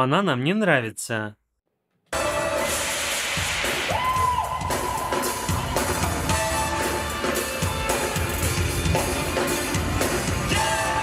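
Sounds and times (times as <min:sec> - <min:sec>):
live pop band music: 0:02.2 - 0:11.0.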